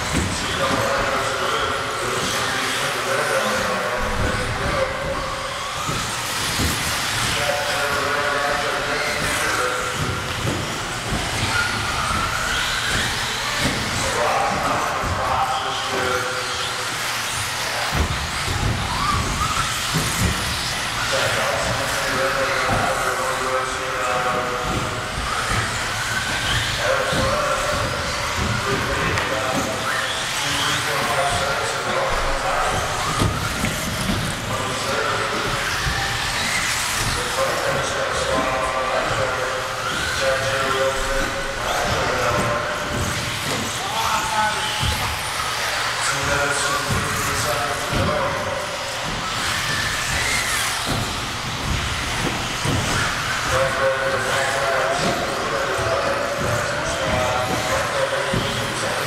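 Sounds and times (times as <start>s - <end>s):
cars clattering against boards: 0.0s - 59.0s
rc car motor whines: 0.0s - 59.0s.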